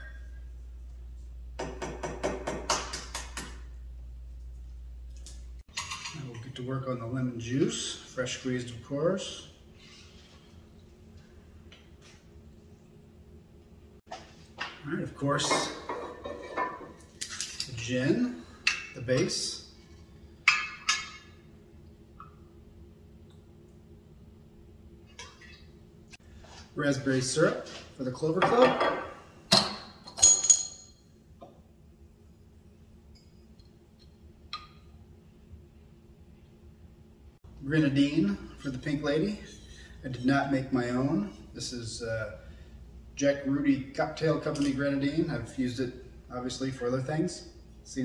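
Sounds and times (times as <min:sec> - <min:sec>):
steady low hum: 0:00.0 - 0:30.0, 0:30.6 - 0:48.0.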